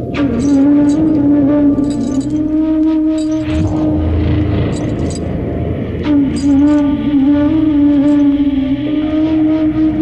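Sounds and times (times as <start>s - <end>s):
low steady rumble: 0.0s - 9.8s.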